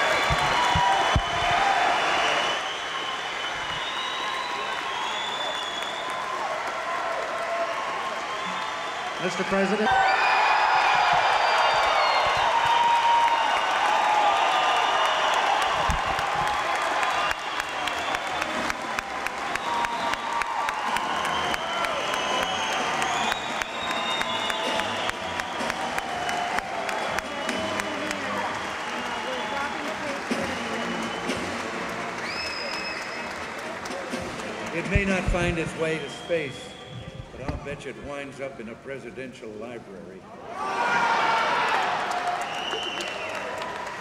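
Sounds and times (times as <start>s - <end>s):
audience applauding: 0.0s - 36.5s, 40.7s - 44.0s.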